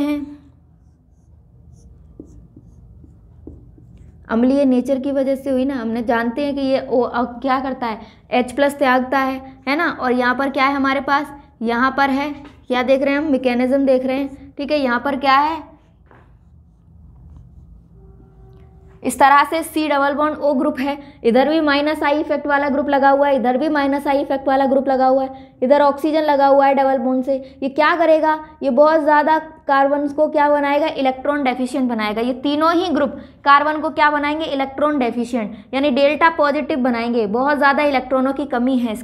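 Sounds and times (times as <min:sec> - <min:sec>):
marker scratching on whiteboard: 0:00.0 - 0:04.7, 0:15.0 - 0:19.2
marker pen on whiteboard: 0:00.0 - 0:06.8, 0:08.4 - 0:20.6
marker tapping on board: 0:00.8 - 0:04.2.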